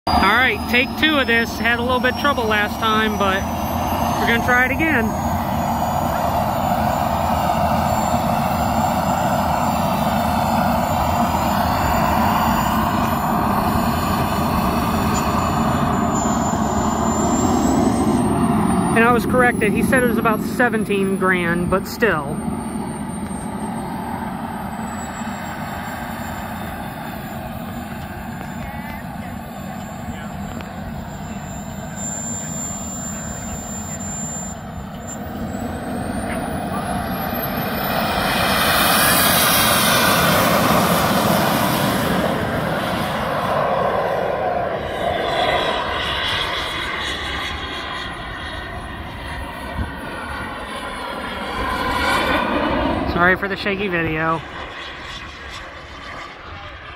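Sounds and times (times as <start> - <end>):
model jet turbine whining: 0.1 - 56.9.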